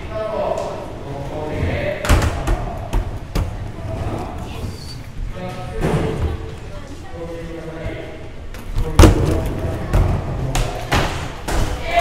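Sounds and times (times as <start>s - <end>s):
skateboards thumping on wooden ramps: 8.7s - 12.0s.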